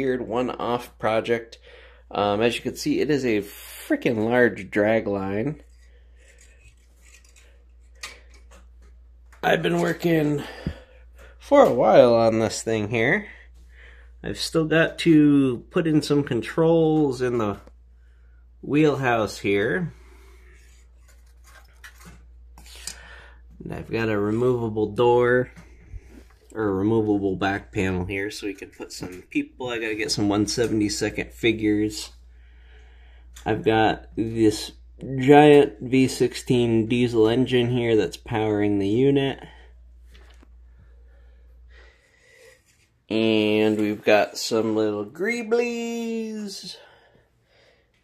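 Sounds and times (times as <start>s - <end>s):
low steady hum: 0.0s - 45.2s
faint breath: 1.6s - 2.1s, 10.4s - 11.4s, 13.2s - 14.2s, 22.6s - 23.5s, 32.2s - 33.4s, 40.6s - 42.9s, 46.8s - 48.0s.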